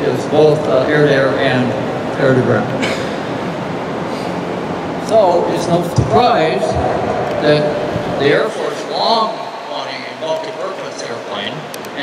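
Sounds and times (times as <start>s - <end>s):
hall room noise hiss and rumble: 0.0s - 12.0s.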